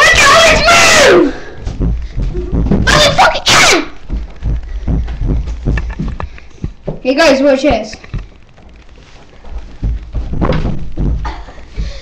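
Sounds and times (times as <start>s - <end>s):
dull thumps: 1.6s - 12.0s.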